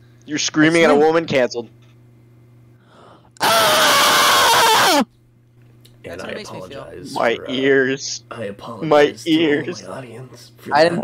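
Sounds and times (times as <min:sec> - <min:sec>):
man screaming into microphone: 0:03.4 - 0:05.1.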